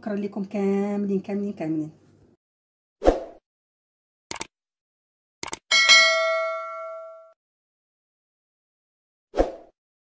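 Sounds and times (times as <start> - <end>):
bell-like notification ding: 5.7 - 7.4.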